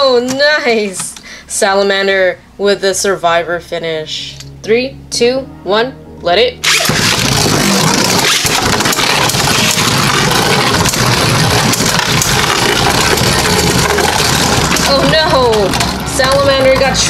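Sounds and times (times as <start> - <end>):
spinning tops whirring and scraping: 6.6 - 17.0.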